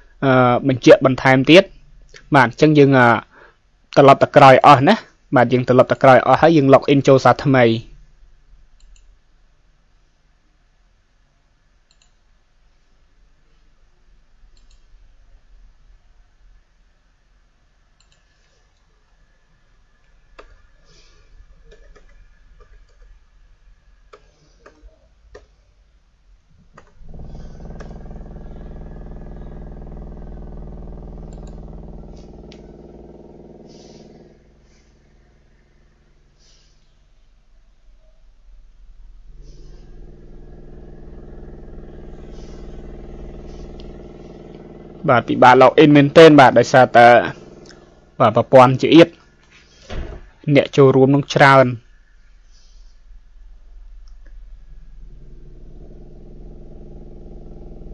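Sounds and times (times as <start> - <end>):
low steady hum: 0.0 - 57.9
computer mouse clicks: 8.8 - 9.1, 11.9 - 12.2, 14.6 - 14.9, 18.0 - 18.3, 21.6 - 23.1, 31.3 - 31.7
steady motor hum: 26.9 - 36.7, 39.0 - 49.7, 53.7 - 57.9.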